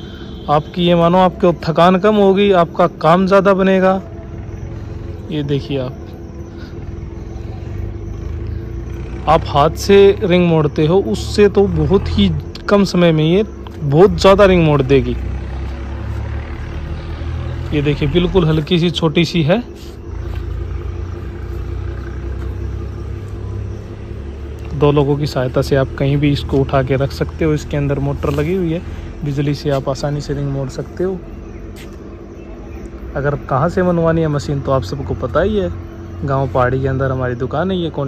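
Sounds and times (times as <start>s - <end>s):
motor rumbling and humming: 0.0s - 38.0s.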